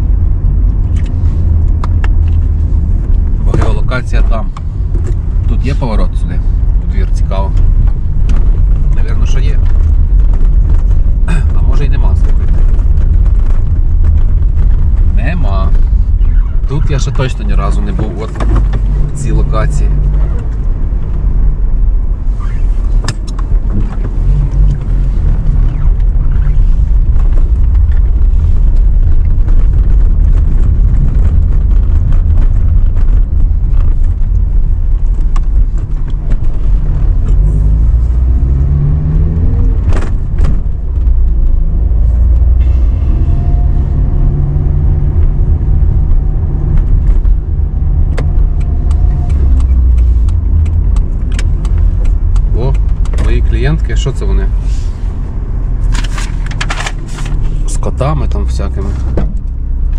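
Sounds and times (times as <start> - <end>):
car engine: 0.0 - 59.9
road rumble: 0.0 - 59.9.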